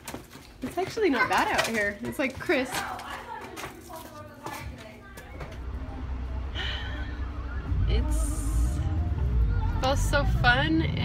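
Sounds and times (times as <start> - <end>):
faint children's voices: 2.7 - 10.9.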